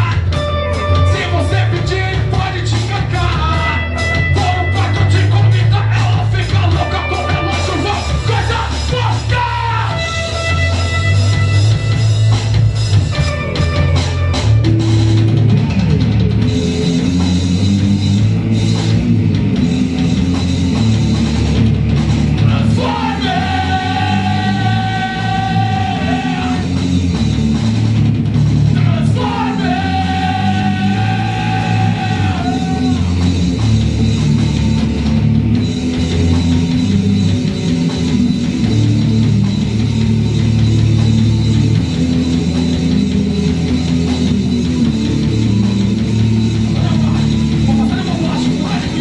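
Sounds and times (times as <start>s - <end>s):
rock band playing: 0.0s - 49.0s.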